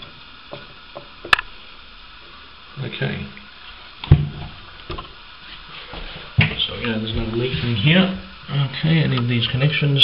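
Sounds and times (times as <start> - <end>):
man talking: 6.4 - 10.0.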